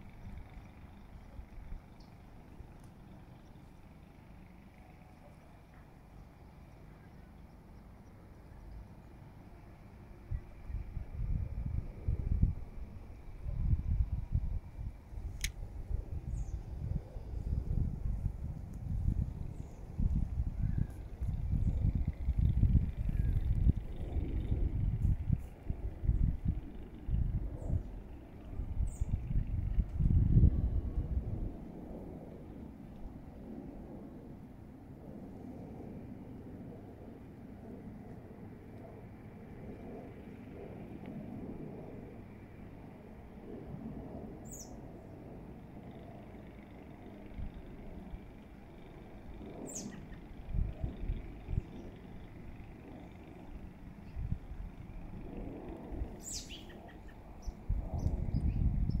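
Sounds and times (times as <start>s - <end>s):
gusty outdoor rumble: 0.0s - 59.0s
birds chirping: 49.1s - 54.3s, 56.1s - 57.6s.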